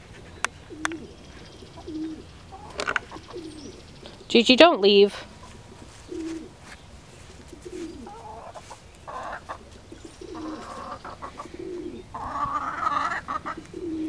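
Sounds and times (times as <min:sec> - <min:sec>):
pigeon cooing: 0:00.6 - 0:04.2, 0:05.4 - 0:06.6, 0:07.5 - 0:14.0
hens clucking: 0:00.7 - 0:04.2, 0:05.1 - 0:14.0.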